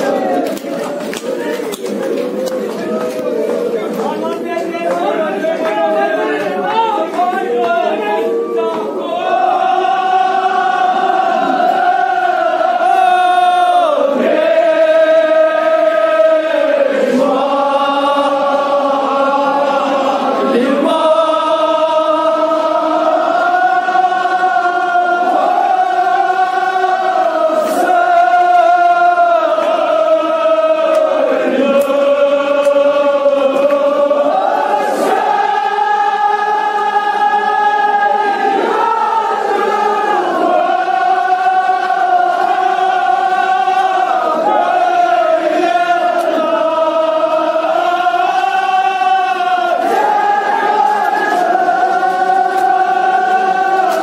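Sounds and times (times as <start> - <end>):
men chanting a lament: 0.0 - 54.0.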